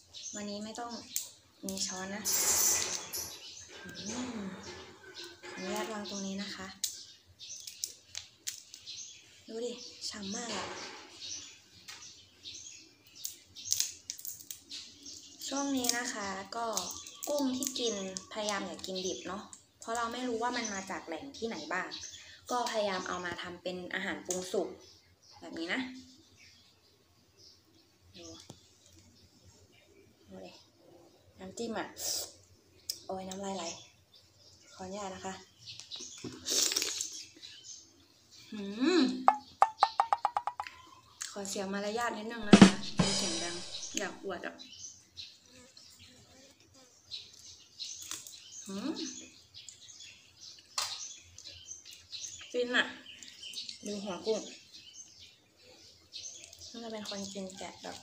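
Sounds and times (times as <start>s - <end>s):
shrimp shell crackling and snapping: 7.6s - 8.9s, 13.1s - 14.8s, 16.7s - 18.9s, 35.7s - 37.2s, 47.9s - 48.6s.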